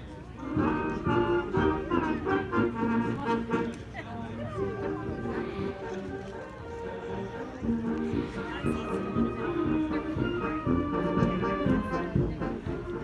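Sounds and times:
held brass notes: 0.3s - 13.0s
marching drum beats: 7.6s - 13.0s.

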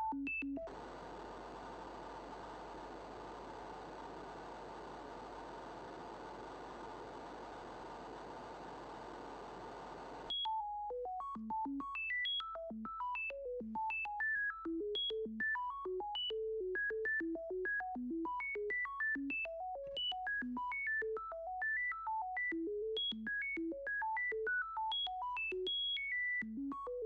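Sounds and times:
synthesized noise hiss: 0.7s - 10.3s.

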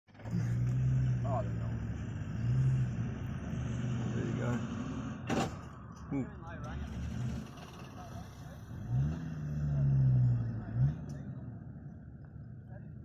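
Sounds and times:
vehicle engine idling: 0.1s - 13.0s.

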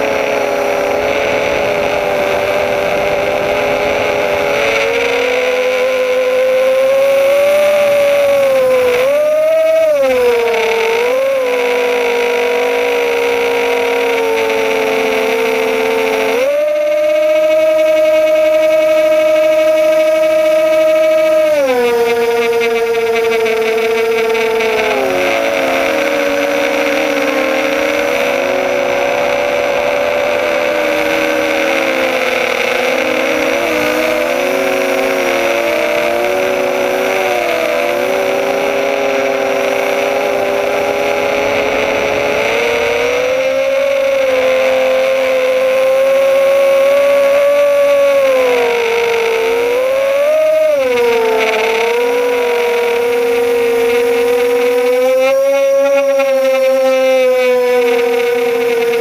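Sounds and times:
quadcopter motors whining: 0.0s - 59.0s.

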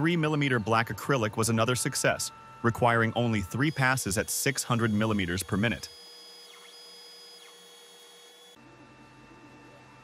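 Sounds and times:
laser engraver motors whining: 0.0s - 10.0s.

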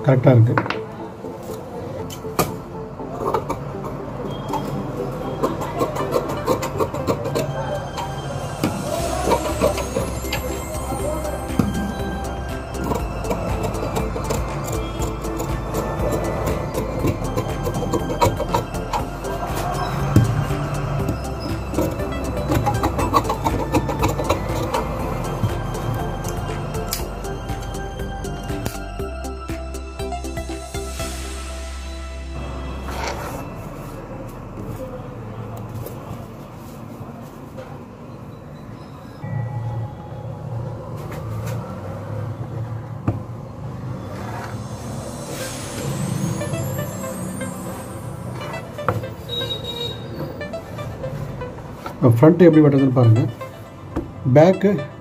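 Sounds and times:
instrumental background music: 0.0s - 35.0s, 44.5s - 55.0s.

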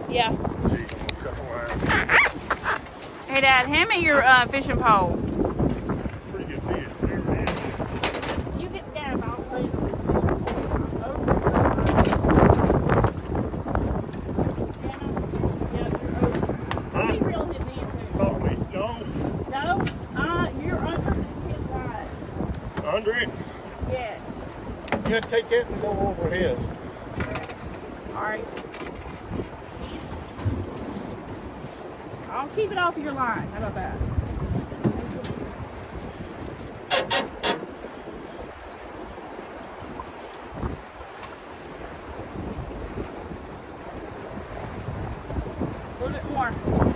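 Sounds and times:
river water flowing: 0.0s - 6.4s, 18.9s - 46.9s
wind buffeting microphone: 0.0s - 46.9s
low thump: 30.4s - 30.8s.

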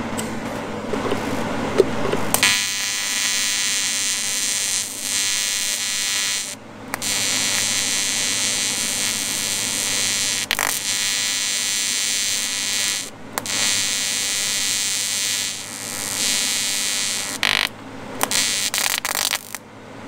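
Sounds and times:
welding arc buzzing: 2.3s - 19.6s.

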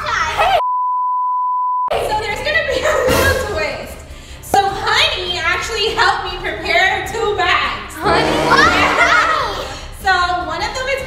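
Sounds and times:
girl calling out: 8.0s - 9.4s.

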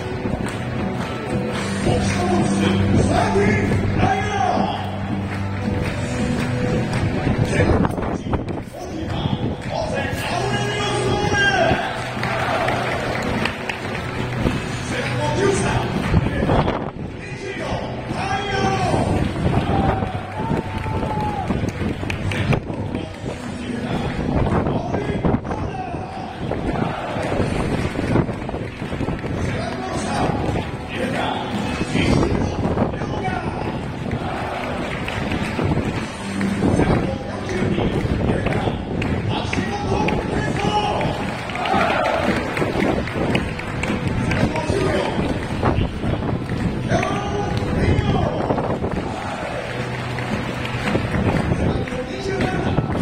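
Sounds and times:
crowd noise: 0.0s - 53.0s
loudspeaker voice announcing: 1.0s - 27.6s, 29.3s - 50.2s, 51.3s - 53.0s.

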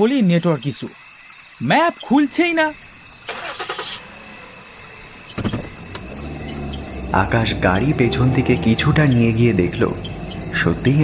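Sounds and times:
car engine starting and idling: 2.8s - 11.0s.

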